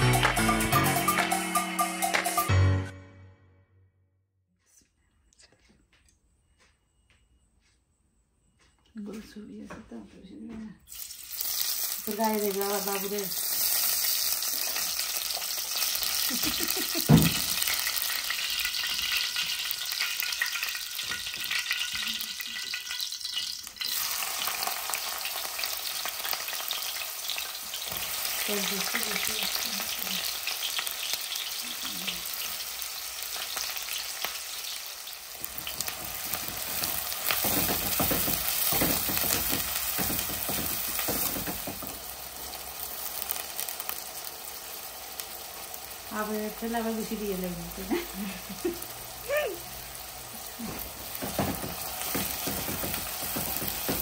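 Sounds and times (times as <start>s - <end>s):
food sizzling in hot oil: 10.9s - 54.0s.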